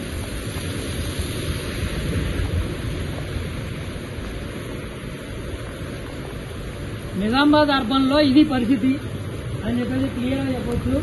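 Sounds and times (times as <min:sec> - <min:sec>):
heavy rain: 0:00.0 - 0:11.0
wind rumbling on microphone: 0:00.0 - 0:11.0.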